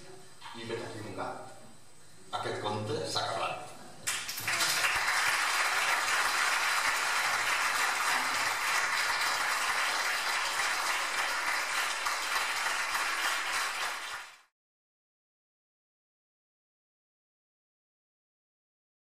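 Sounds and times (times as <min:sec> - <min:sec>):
audience applauding: 0:04.1 - 0:14.5.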